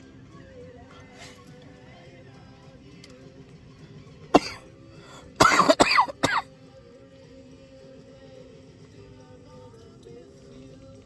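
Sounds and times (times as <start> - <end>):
man coughing: 4.3 - 4.7, 5.4 - 6.5.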